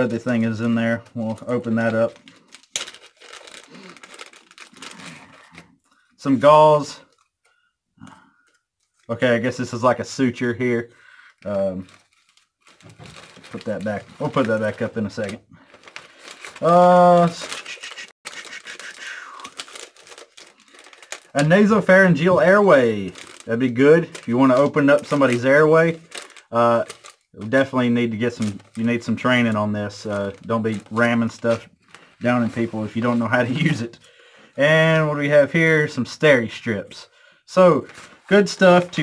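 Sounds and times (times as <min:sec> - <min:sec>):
wrapper crinkling as torn open: 0:01.0 - 0:05.7, 0:10.7 - 0:33.8, 0:37.8 - 0:39.0.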